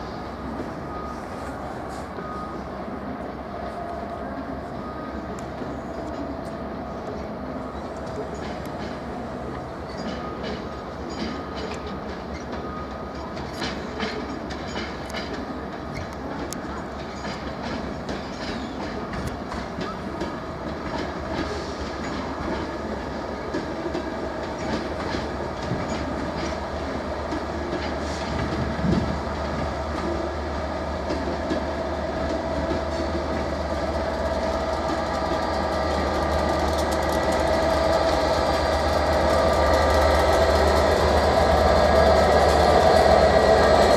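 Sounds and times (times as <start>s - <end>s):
diesel locomotive engine drone: 0.0s - 43.9s
train coaches rolling past: 0.0s - 43.9s
wheels clicking over rail joints: 5.3s - 43.9s.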